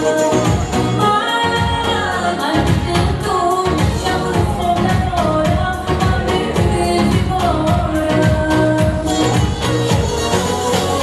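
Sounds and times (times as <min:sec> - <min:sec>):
keyboard backing with beat: 0:00.0 - 0:11.0
woman singing into microphone: 0:00.0 - 0:11.0.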